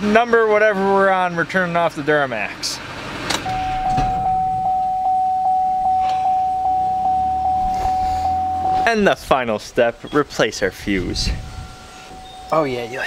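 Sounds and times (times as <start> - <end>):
dashboard warning chime pings: 3.5 - 9.0, 11.6 - 13.0
thump: 3.6 - 4.8.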